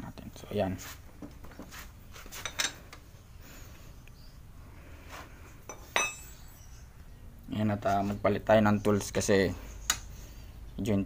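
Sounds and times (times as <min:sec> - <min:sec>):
steel wrenches clinking: 0:05.7 - 0:06.5.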